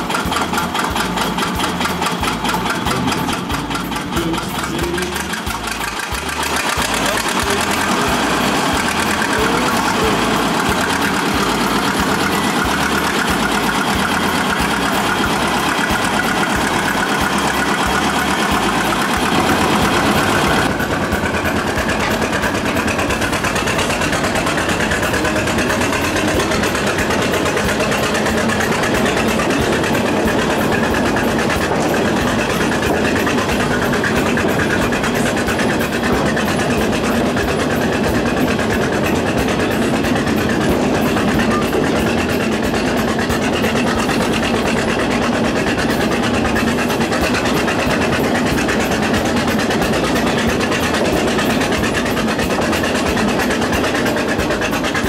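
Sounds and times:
diesel locomotive engine chugging: 0.0s - 55.0s.

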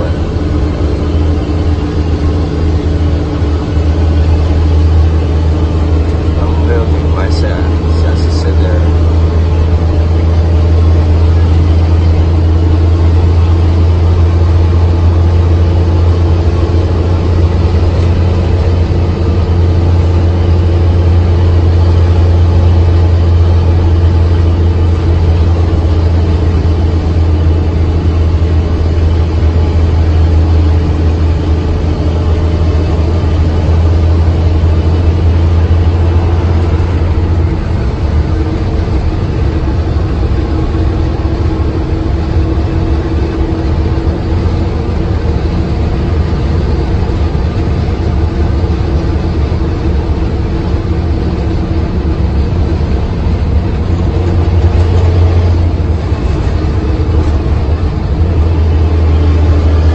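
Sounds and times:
truck engine drone inside cab: 0.0s - 59.9s.

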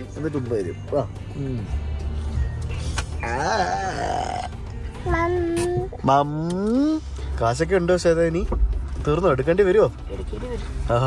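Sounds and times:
car cabin rumble: 4.6s - 11.0s.

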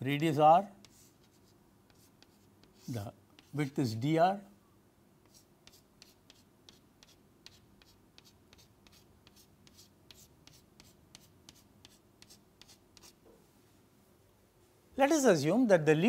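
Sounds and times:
chalk on a chalkboard: 0.8s - 3.8s, 5.2s - 13.3s.

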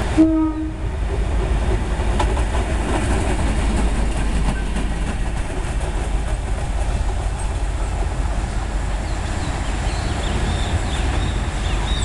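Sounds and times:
locomotive engine rumbling: 0.0s - 12.0s.

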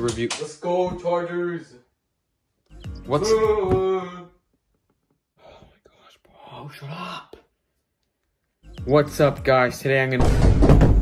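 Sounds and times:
breathy whispery voice: 5.4s - 7.5s.

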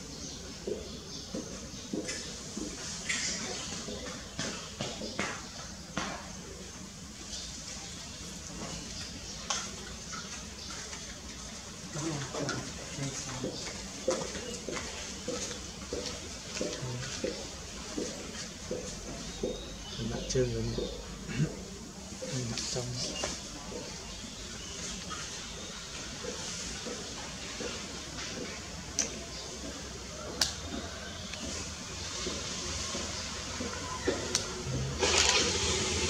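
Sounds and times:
people talking indistinctly: 16.6s - 24.6s.

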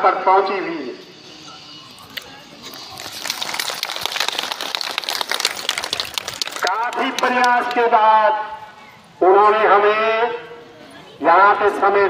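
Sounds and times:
audience applause: 2.1s - 7.8s.

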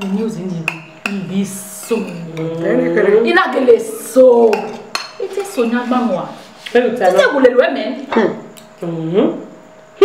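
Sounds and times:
women talking: 0.0s - 9.4s.

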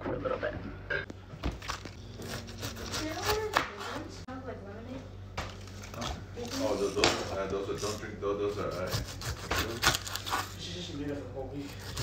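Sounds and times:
knife cutting pineapple: 1.6s - 4.0s, 5.8s - 10.6s, 11.5s - 12.0s.

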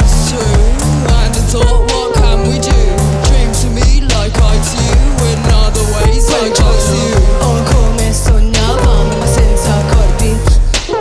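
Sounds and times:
bass: 0.0s - 11.0s
drum beat: 0.0s - 11.0s
lead vocal singing: 0.0s - 11.0s
sustained synth lines: 0.0s - 11.0s.

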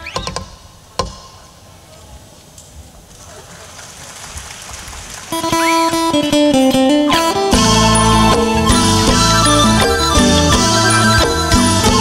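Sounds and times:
faint background noise: 0.0s - 12.0s
folk ensemble playing: 5.4s - 12.0s
music: 5.4s - 12.0s
plucked lute bending note: 6.5s - 12.0s.

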